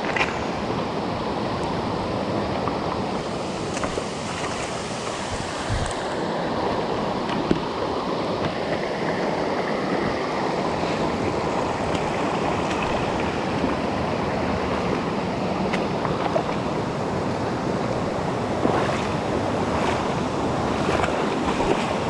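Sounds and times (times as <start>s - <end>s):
stream rushing over stones: 0.0s - 22.0s.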